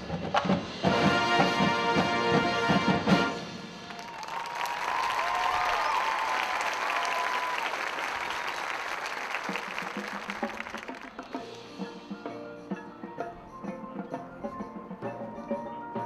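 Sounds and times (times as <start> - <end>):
marching band ensemble hit: 0.0 - 4.4
crowd applauding and cheering: 3.8 - 11.6
wavering whistle-like cheer: 3.9 - 8.8.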